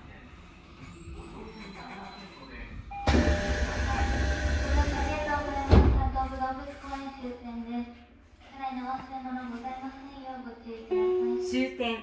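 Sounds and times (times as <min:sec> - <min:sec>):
subway doors sliding open: 0:00.9 - 0:06.4.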